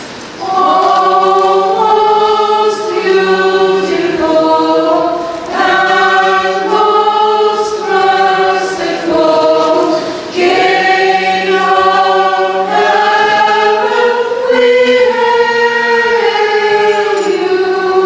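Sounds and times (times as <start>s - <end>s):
choir singing a hymn: 0.4s - 18.0s.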